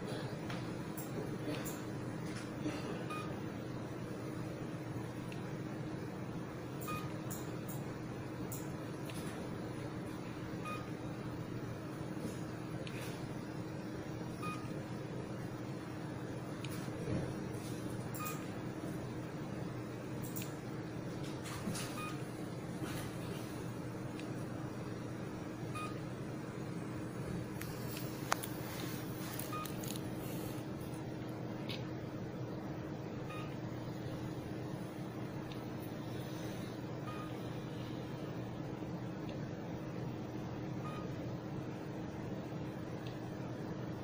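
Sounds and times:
steady low hum: 0:00.0 - 0:44.0
short electronic beeps: 0:06.8 - 0:07.4, 0:14.4 - 0:14.7, 0:25.7 - 0:26.0, 0:37.1 - 0:37.4, 0:40.8 - 0:41.1.

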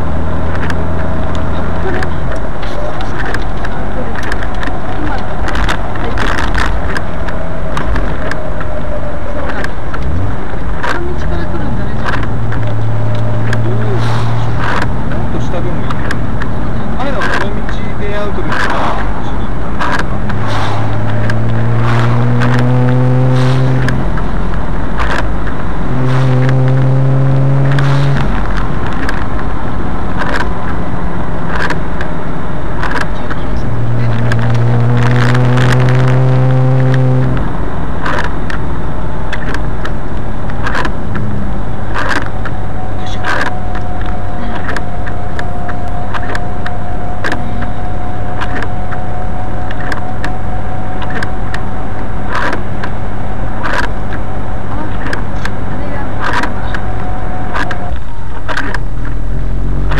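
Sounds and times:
car engine revving: 0:00.0 - 0:59.9
road and wind rush: 0:00.0 - 0:59.9.

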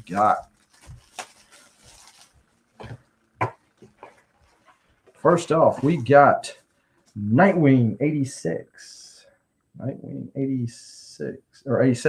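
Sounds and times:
plastic wrapping crinkling: 0:00.0 - 0:07.2.

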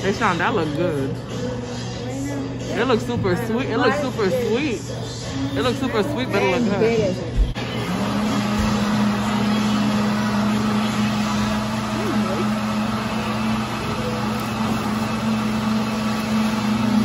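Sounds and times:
low machine hum: 0:00.0 - 0:17.0.

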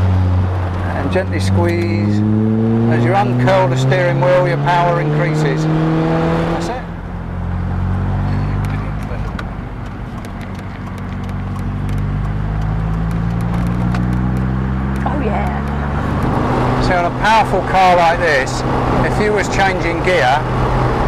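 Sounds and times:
car engine from inside car: 0:00.0 - 0:21.0.

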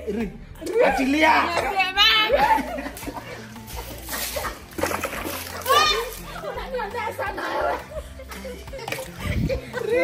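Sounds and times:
water splashing on wall and paving: 0:02.6 - 0:07.7.

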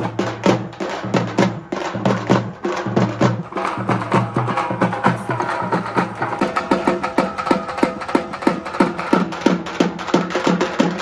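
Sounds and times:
deep drum strokes: 0:00.0 - 0:11.0.

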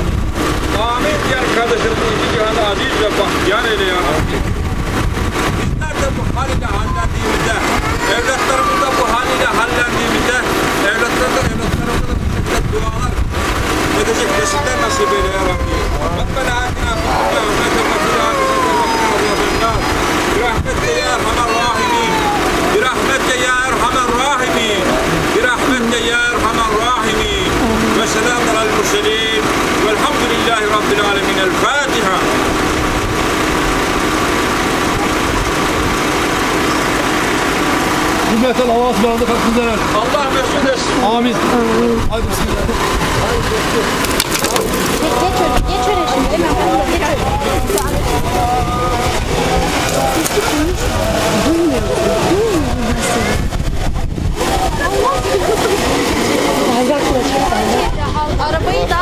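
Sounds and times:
car engine idling: 0:00.0 - 0:59.0
constant low rumble: 0:00.0 - 0:59.0
crowd voices: 0:00.0 - 0:59.0.

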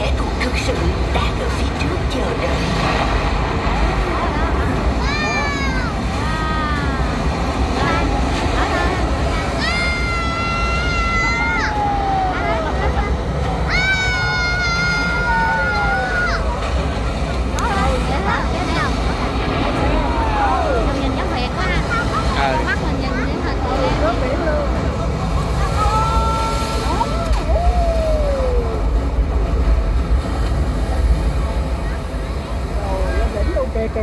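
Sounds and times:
steady low rumble: 0:00.0 - 0:34.0
voices: 0:00.0 - 0:34.0.

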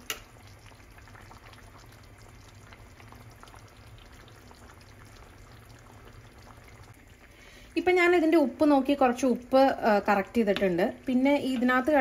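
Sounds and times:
stew bubbling in a pan: 0:00.0 - 0:12.0.

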